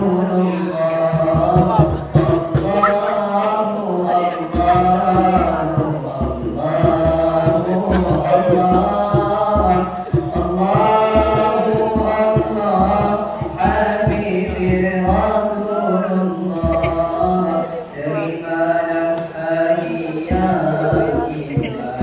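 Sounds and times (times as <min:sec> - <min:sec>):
boys singing a cappella: 0:00.0 - 0:22.0
lead voice through microphone: 0:00.0 - 0:22.0.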